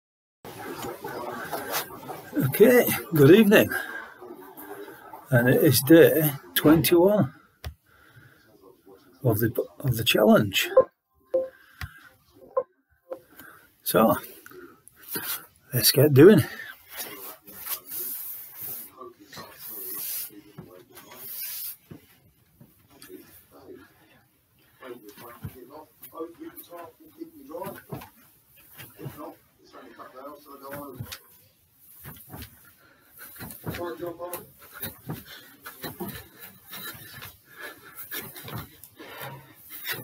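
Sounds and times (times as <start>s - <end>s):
soft footfalls on carpeted stairs: 31.9s - 38.9s.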